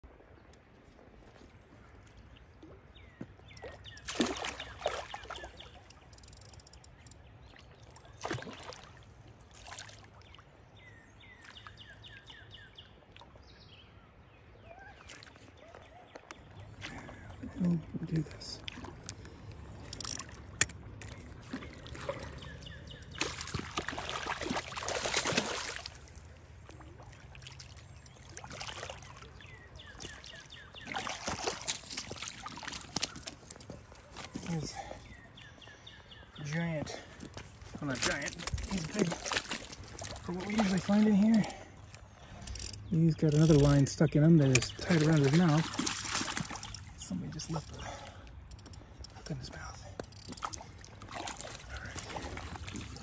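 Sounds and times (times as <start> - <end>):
fish splashing in water: 3.6 - 6.1, 8.1 - 10.2, 19.8 - 34.9, 38.0 - 41.6, 44.6 - 47.0, 50.3 - 53.0
sharp clicks: 5.8 - 7.2, 42.4 - 43.8, 44.4 - 45.1.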